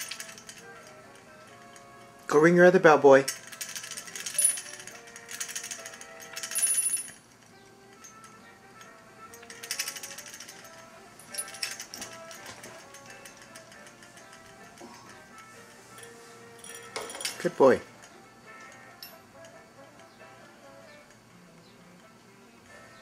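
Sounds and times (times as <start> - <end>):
bell jingling: 0.0 - 2.0, 3.1 - 7.3, 7.9 - 20.1
faint background music: 0.0 - 23.0.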